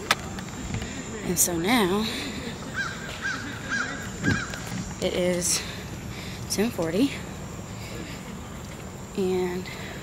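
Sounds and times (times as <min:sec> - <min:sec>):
bird calling: 0:02.7 - 0:04.8.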